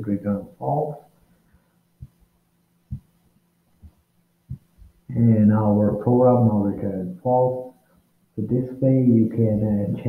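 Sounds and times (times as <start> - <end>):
soft low thumps: 1.9 - 5.2.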